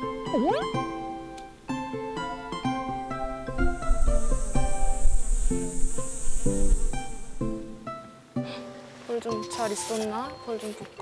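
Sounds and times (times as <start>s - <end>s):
honeybees buzzing: 0.0s - 10.2s
plucked background music: 0.0s - 11.0s.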